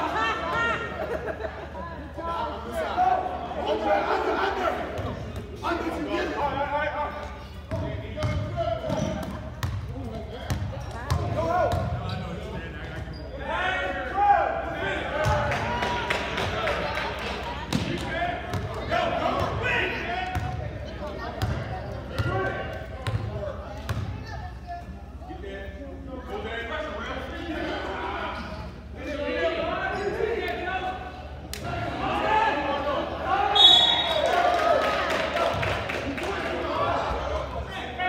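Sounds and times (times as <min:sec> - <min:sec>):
people shouting and chattering: 0:00.0 - 0:38.0.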